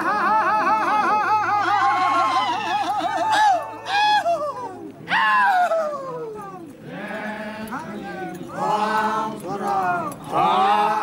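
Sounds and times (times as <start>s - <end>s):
men chanting: 6.8s - 11.0s.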